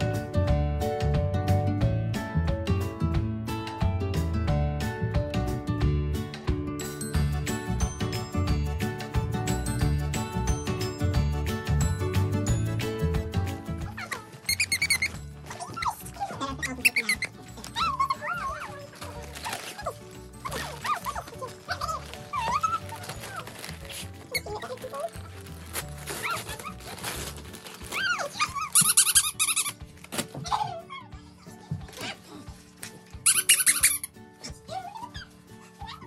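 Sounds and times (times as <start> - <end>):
background music: 0.0 - 36.0
dog whimpering: 14.0 - 18.9, 30.4 - 31.3, 34.4 - 36.0
dog squeaky toy squeaking: 14.0 - 23.6, 27.9 - 29.8, 33.2 - 36.0.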